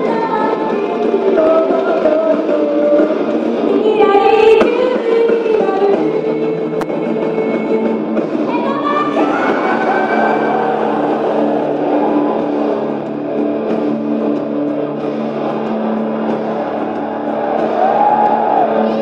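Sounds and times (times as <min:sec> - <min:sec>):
person singing: 0:00.0 - 0:11.1
distorted guitar chords: 0:00.0 - 0:19.0.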